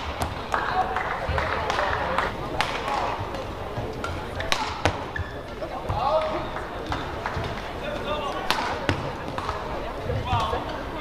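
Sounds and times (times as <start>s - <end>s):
racket striking shuttlecock: 1.7s - 9.7s
shoes squeaking on court: 3.4s - 8.4s.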